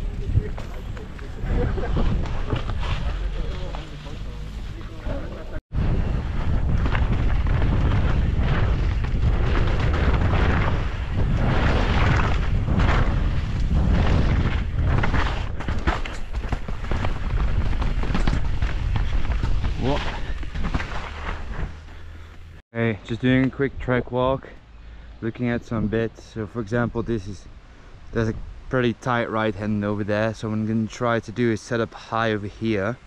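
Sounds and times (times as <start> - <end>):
wind buffeting microphone: 0.0 - 3.6, 5.2 - 20.8
tyres running over dirt: 0.0 - 22.5
bike rattling over bumps: 4.8 - 22.6.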